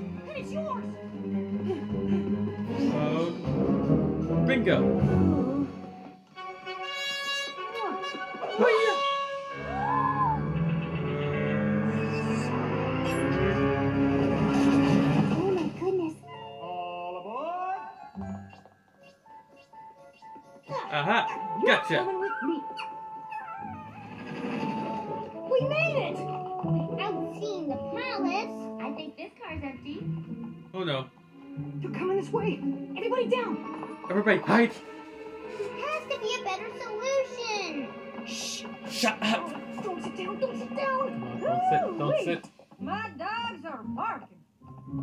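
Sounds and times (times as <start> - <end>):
cartoon music through tv speaker: 0.0 - 45.0.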